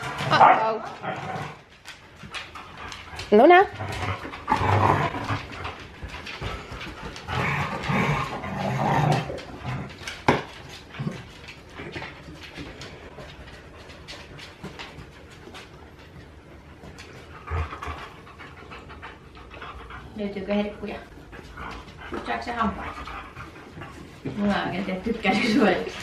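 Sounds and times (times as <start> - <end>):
claws clicking on wooden floor: 0.0 - 18.2
dogs panting and snuffling: 0.0 - 26.0.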